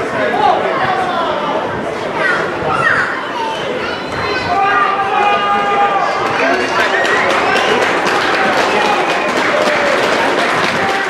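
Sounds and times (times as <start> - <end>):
players and spectators shouting: 0.0 - 11.0
long held shout: 4.5 - 11.0.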